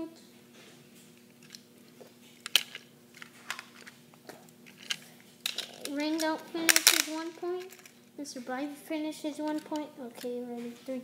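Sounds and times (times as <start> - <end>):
faint steady hum: 0.0 - 11.0
plastic toy parts clicking: 2.4 - 3.9, 4.7 - 7.9, 9.4 - 10.3.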